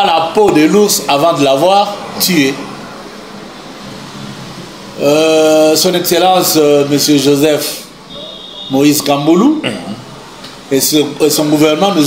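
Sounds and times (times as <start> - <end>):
steady hiss-like hum: 0.0 - 12.0.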